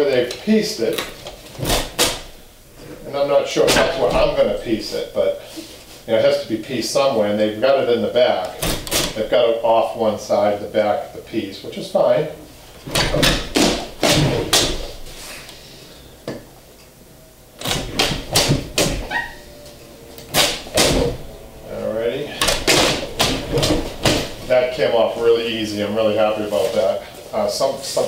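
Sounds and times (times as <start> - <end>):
fabric tearing off staples: 1.5 - 2.3, 12.9 - 15.0, 17.6 - 19.1, 20.3 - 21.2, 22.4 - 24.5.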